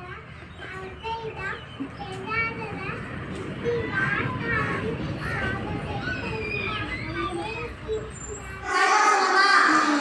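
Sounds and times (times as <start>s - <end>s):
children's voices: 0.0s - 10.0s.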